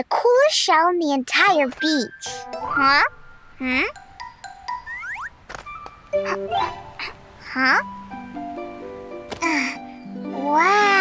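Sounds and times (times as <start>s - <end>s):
cartoon background music: 1.4s - 11.0s.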